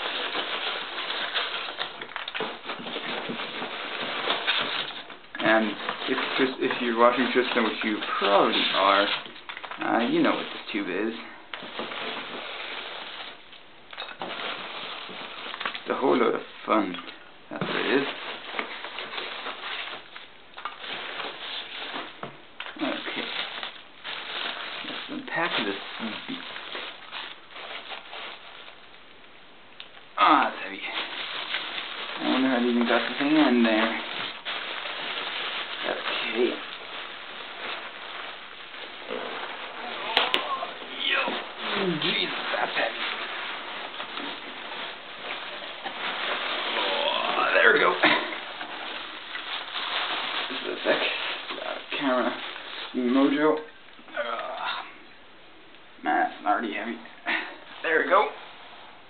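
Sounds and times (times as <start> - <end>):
packing peanuts rustling: 0.0 - 55.1, 56.3 - 59.0
bubble wrap crinkling: 0.0 - 59.0.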